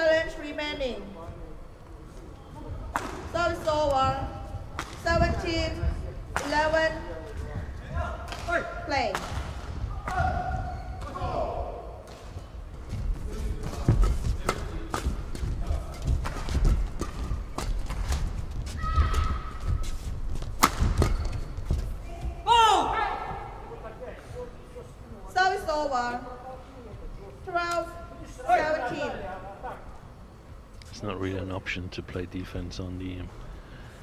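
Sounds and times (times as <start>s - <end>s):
racket striking shuttlecock: 20.4s - 21.5s.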